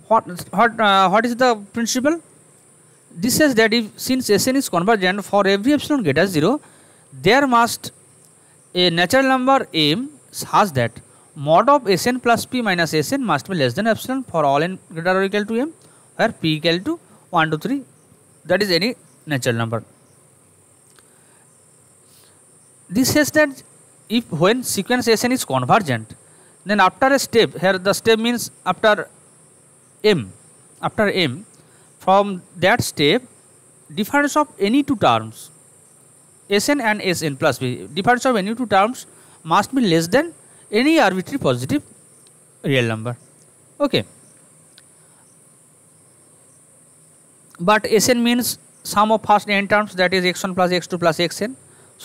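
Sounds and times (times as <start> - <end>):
person speaking: 0.0 - 2.3, 3.1 - 7.9, 8.8 - 19.9, 22.9 - 29.2, 30.0 - 33.3, 33.9 - 35.5, 36.5 - 41.9, 42.6 - 43.2, 43.8 - 44.1, 47.5 - 51.6
high-pitched hiss: 0.0 - 52.0
faint click: 20.8 - 21.1.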